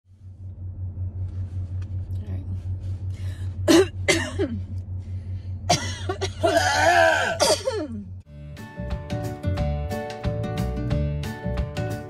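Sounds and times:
low hum: 0.0s - 8.4s
woman coughing: 3.7s - 4.6s, 5.7s - 8.1s.

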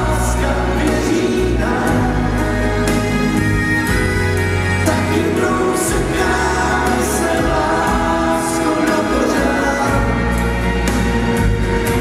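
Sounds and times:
voices singing together: 0.0s - 3.9s, 4.8s - 12.0s
electric keyboards: 0.0s - 12.0s
low bass notes: 0.0s - 12.0s.

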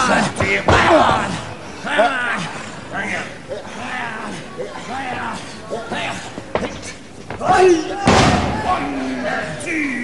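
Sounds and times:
spectators shouting: 7.4s - 10.0s.

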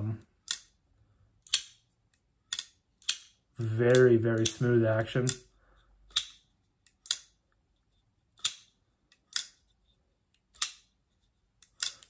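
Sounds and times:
folding knife blade clicking: 0.4s - 0.7s, 1.4s - 1.8s, 2.5s - 4.6s, 6.1s - 7.4s, 8.4s - 9.6s, 11.6s - 12.0s.

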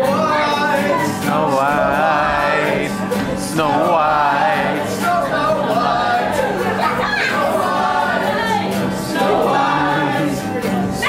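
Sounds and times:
group singing chorus: 0.0s - 11.0s.

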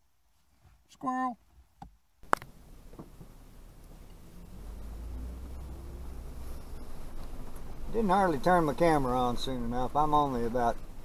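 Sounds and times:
vehicle engine and tyres rumbling: 2.2s - 11.0s.

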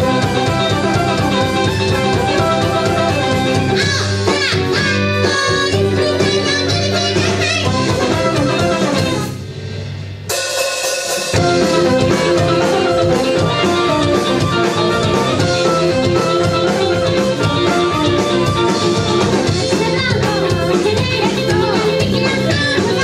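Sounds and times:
live rock band playing: 0.0s - 23.0s.

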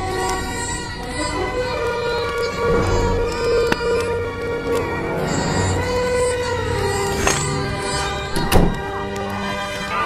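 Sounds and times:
dramatic film music: 0.0s - 10.0s
wooden closet doors slamming: 8.3s - 9.0s.

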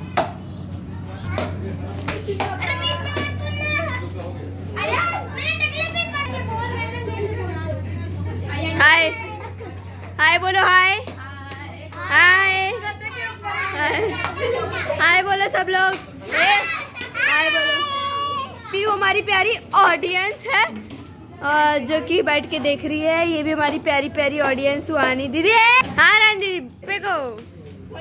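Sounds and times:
steady low hum: 0.0s - 17.0s
children calling out and chattering: 0.0s - 28.0s
children calling out: 2.4s - 7.3s, 16.2s - 18.9s.

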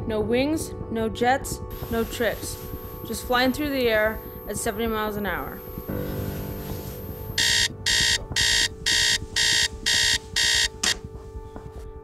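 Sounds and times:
alarm clock beeping: 1.7s - 6.2s, 6.9s - 11.0s.

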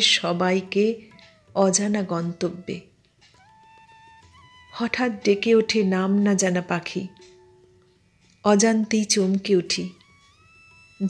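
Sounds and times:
soft background music: 0.0s - 11.0s
woman reciting poetry: 4.8s - 7.3s.

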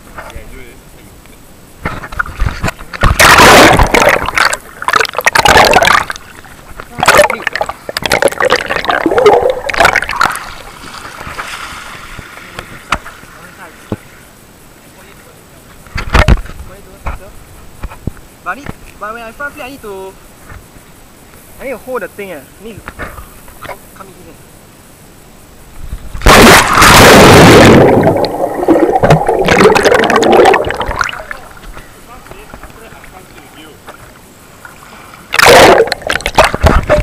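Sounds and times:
water running off hiss: 1.7s - 15.7s, 26.1s - 37.0s
underwater gurgling with clicks: 2.2s - 10.5s, 26.2s - 31.6s, 35.3s - 37.0s.

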